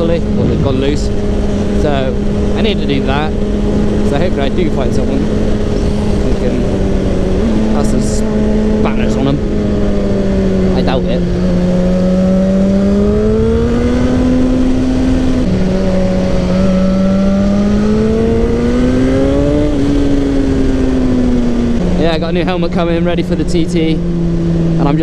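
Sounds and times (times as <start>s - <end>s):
wind rushing: 0.0s - 4.1s
motorcycle engine revving: 0.0s - 25.0s.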